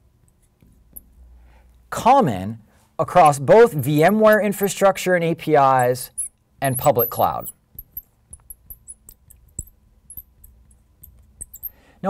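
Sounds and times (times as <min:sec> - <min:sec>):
marker squeaking on glass: 0:03.5 - 0:04.8, 0:05.6 - 0:11.8.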